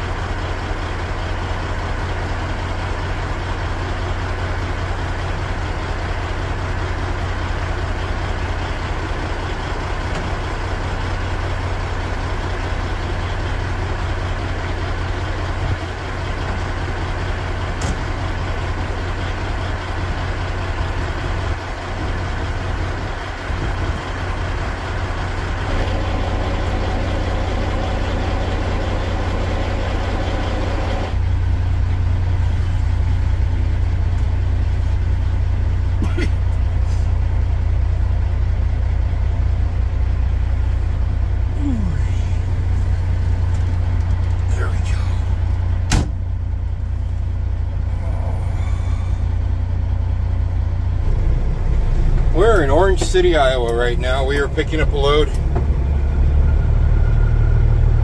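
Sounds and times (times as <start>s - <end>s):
diesel truck engine idling: 0.0s - 58.0s.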